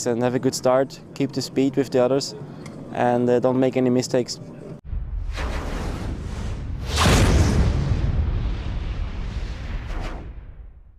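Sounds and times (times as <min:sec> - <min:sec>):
cinematic boom hit: 0:04.8 - 0:10.9
low rumble: 0:04.8 - 0:10.9.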